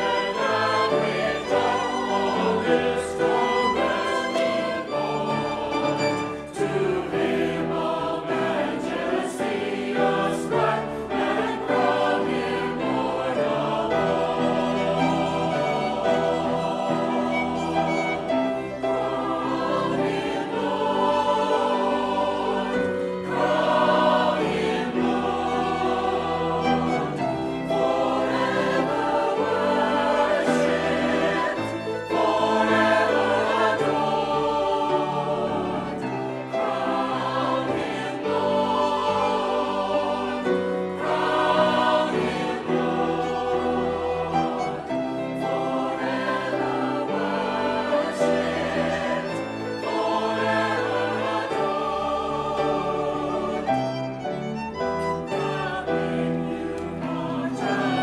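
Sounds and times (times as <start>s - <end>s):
church choir singing a hymn: 0.0s - 58.0s
violin accompaniment: 0.0s - 58.0s.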